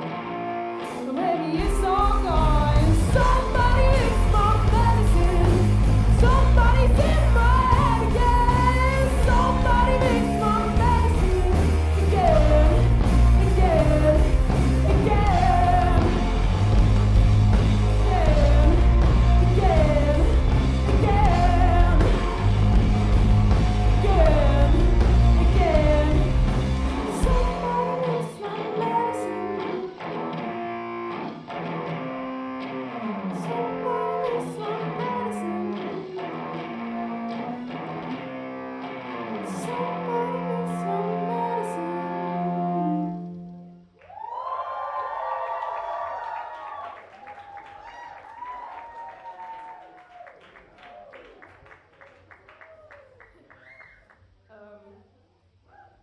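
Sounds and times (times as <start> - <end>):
live band music: 0.0 - 43.9
audience cheering and clapping: 15.0 - 27.3, 43.9 - 54.3.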